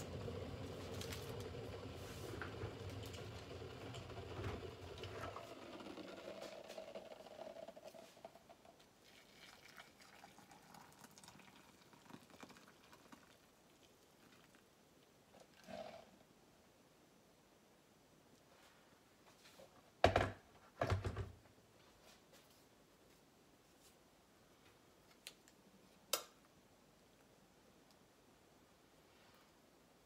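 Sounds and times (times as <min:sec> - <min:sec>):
water pouring into mug: 0:04.0 - 0:14.7
small handling sounds: 0:21.8 - 0:26.5.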